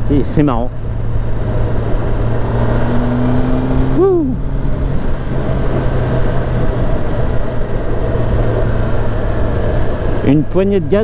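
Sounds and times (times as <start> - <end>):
motorcycle engine humming: 0.0 - 11.0
wind rush: 0.0 - 11.0.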